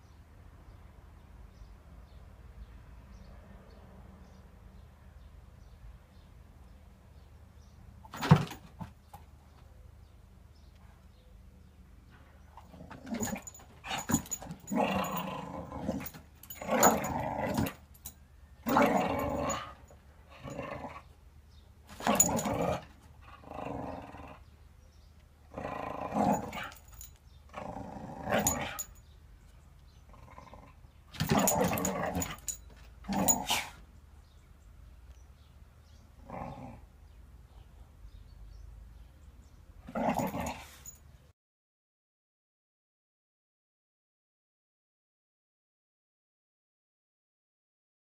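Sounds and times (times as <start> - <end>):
dog growling: 12.6 - 17.8, 18.7 - 21.1, 22.0 - 24.5, 25.5 - 26.8, 27.5 - 28.9, 30.0 - 32.5, 33.1 - 33.8, 36.2 - 36.9, 39.9 - 40.9.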